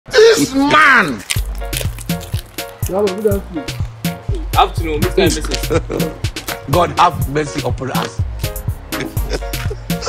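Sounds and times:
music with drum beat and bass: 1.4s - 10.0s
person speaking: 2.7s - 8.2s.

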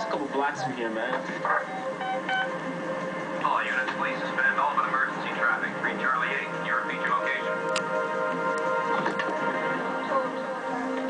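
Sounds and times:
short electronic beeps: 1.5s - 2.5s.

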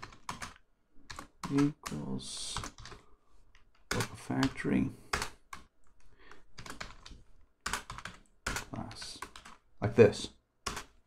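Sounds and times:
computer keyboard typing: 0.0s - 5.7s, 6.3s - 9.6s, 10.6s - 11.0s.

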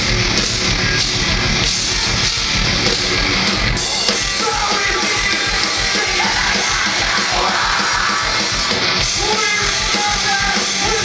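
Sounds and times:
distorted electric guitars: 0.0s - 11.0s
driving drum beat: 0.0s - 11.0s
screamed vocals: 3.8s - 8.6s.

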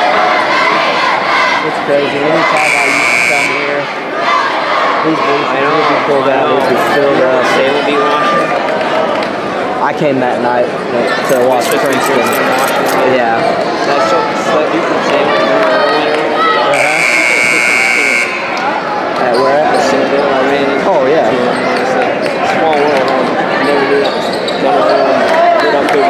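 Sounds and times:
crowd talking: 0.0s - 26.0s
high-pitched scoreboard buzzer: 16.8s - 18.5s.

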